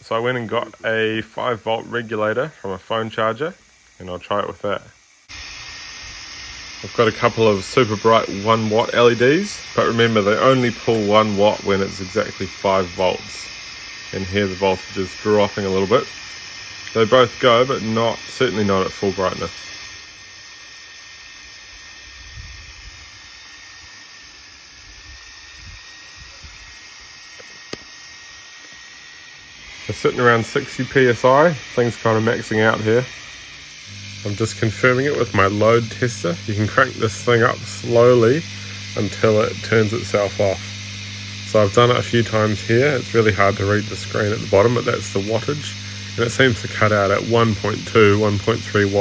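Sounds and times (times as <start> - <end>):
water jetting hiss: 0.0 - 49.0.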